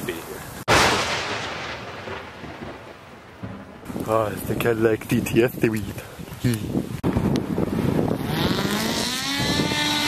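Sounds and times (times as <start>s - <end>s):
rumbling boom: 0.7s - 5.0s.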